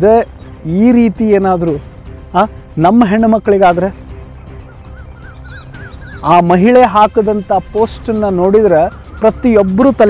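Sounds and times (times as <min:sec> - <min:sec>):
faint music: 0:00.0 - 0:10.0
bird calling repeated notes: 0:04.3 - 0:06.9, 0:08.7 - 0:10.0.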